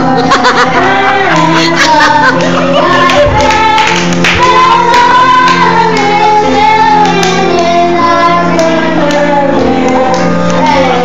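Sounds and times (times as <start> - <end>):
children singing into microphones: 0.0 - 11.0.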